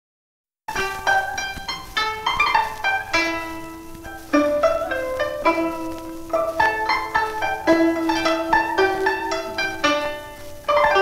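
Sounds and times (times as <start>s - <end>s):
harp plucked melody: 0.7s - 11.0s.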